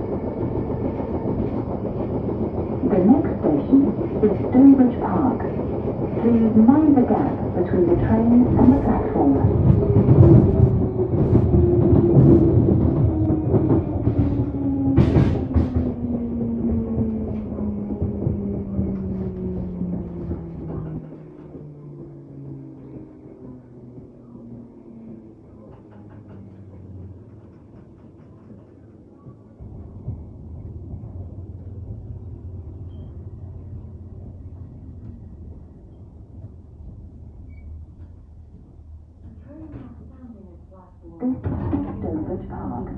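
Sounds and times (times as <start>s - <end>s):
low rumble of standing train: 0.0s - 42.9s.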